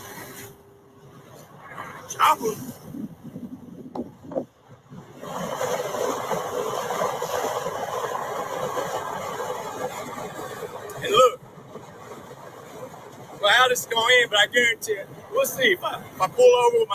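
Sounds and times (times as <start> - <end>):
wind and road noise in vehicle: 0.0 - 16.9.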